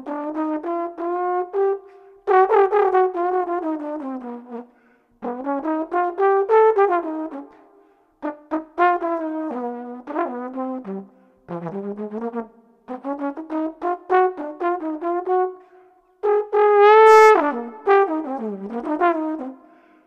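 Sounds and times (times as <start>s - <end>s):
solo trombone playing jazz: 0.0s - 4.6s, 5.2s - 7.4s, 8.2s - 15.6s, 16.2s - 19.6s.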